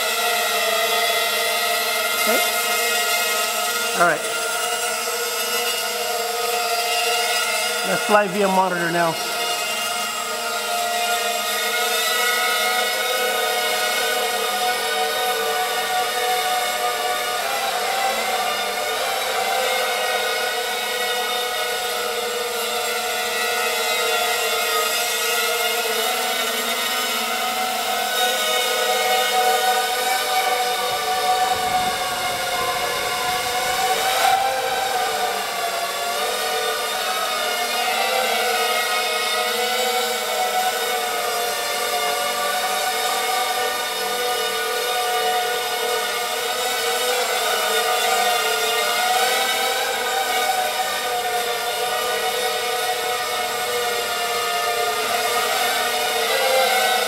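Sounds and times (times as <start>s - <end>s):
quadcopter motors whining: 0.0s - 57.0s.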